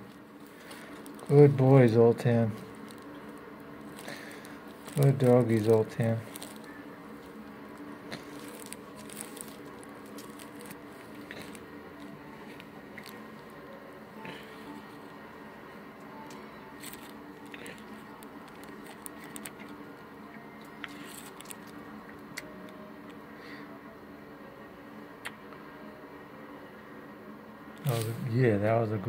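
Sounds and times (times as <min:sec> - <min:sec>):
faint background music: 0:00.0 - 0:29.0.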